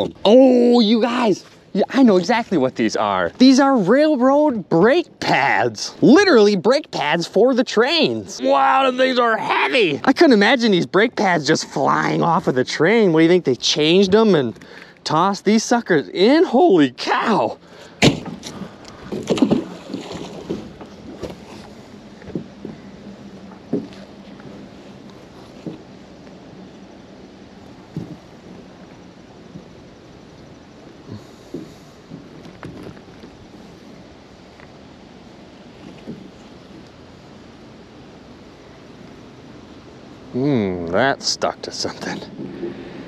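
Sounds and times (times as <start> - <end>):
faint steady background noise: 0.0 - 43.0
rope rustling: 18.2 - 26.8, 31.1 - 34.7.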